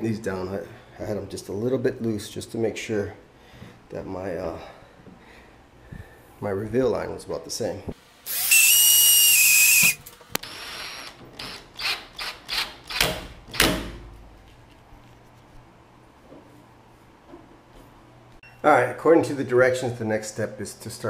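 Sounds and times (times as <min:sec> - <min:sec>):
power drill whining: 0:08.3 - 0:13.0.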